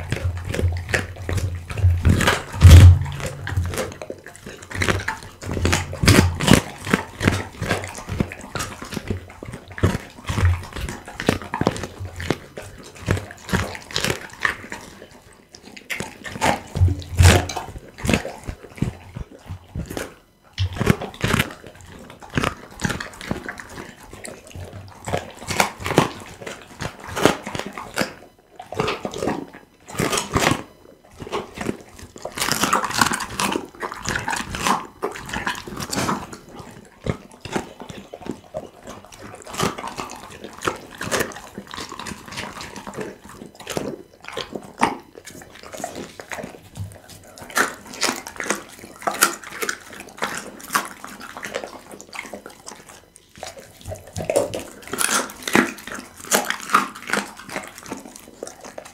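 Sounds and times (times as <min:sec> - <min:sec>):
jaws smacking: 0:00.0 - 0:04.1, 0:04.8 - 0:14.1, 0:16.4 - 0:18.2
dog chewing crunching bones: 0:00.0 - 0:58.9.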